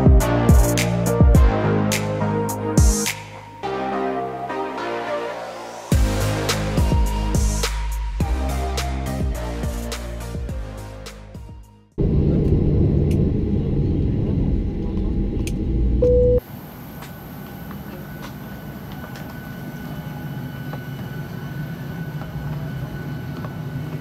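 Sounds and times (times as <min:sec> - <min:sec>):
airplane taxiing rumble: 0:12.0 - 0:24.0.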